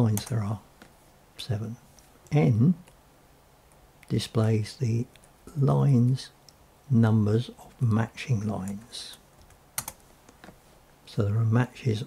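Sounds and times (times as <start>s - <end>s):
computer keyboard keystrokes: 9.4s - 10.0s.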